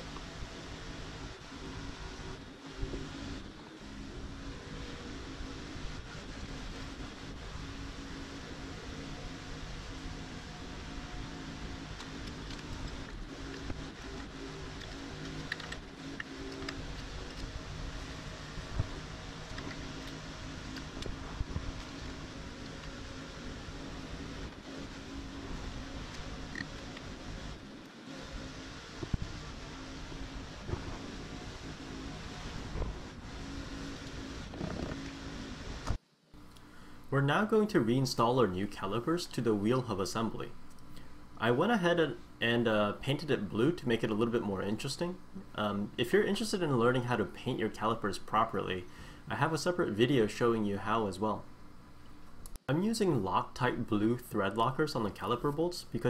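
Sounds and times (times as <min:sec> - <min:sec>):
mechanical hum: 0:00.0 - 0:56.0.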